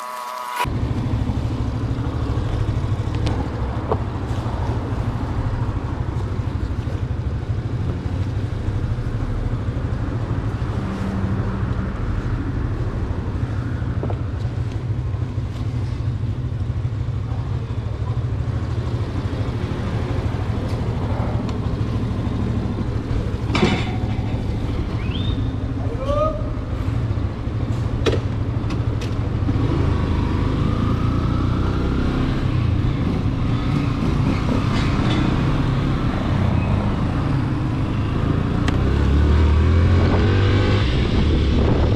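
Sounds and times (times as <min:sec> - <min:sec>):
motorcycle engine running: 0:00.7 - 0:11.1.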